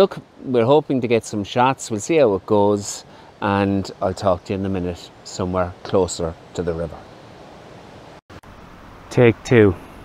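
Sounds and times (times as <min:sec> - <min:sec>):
river rushing: 0:00.0 - 0:10.0.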